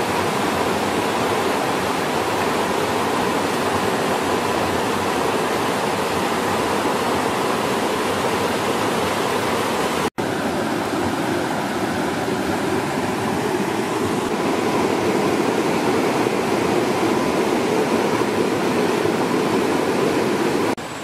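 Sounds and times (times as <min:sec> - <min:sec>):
stream and waterfall running: 0:00.0 - 0:21.0.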